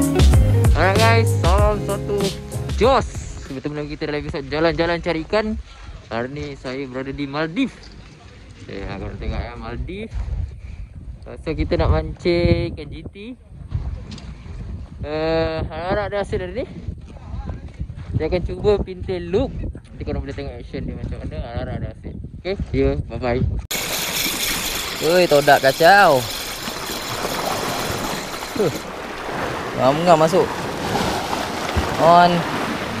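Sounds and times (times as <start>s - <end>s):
wind buffeting microphone: 2.8s - 33.0s
seawater rushing against rocks: 23.7s - 33.0s.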